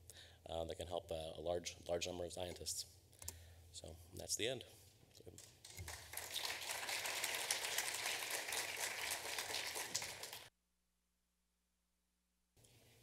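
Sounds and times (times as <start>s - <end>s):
audience applauding: 5.6s - 10.5s.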